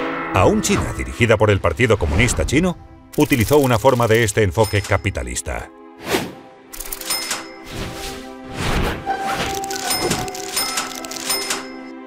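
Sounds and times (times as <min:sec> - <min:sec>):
background music with held notes: 0:00.0 - 0:12.0
cash register ka-ching: 0:03.2 - 0:05.2, 0:06.8 - 0:07.7, 0:09.2 - 0:12.0.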